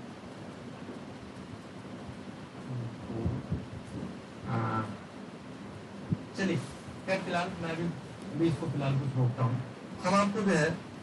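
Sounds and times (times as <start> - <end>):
room noise hiss: 0.0 - 11.0
low thumps: 2.7 - 4.2.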